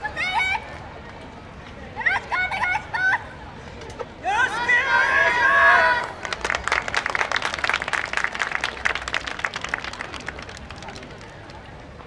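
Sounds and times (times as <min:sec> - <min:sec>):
loud drawn-out shout: 0:04.2 - 0:06.2
audience applauding: 0:06.2 - 0:11.3.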